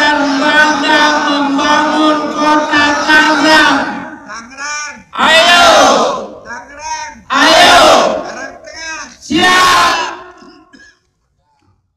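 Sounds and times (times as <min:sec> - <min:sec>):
crowd shouting together: 0:00.0 - 0:04.2, 0:05.2 - 0:06.4, 0:07.3 - 0:08.6, 0:09.2 - 0:10.4.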